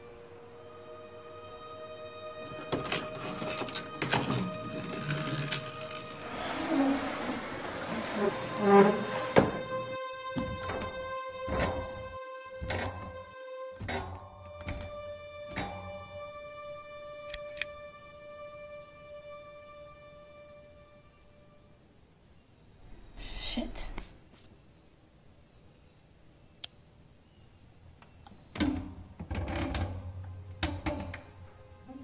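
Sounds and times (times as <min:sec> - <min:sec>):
tense film score: 0:00.0 - 0:24.0
thin high tone: 0:16.2 - 0:22.6.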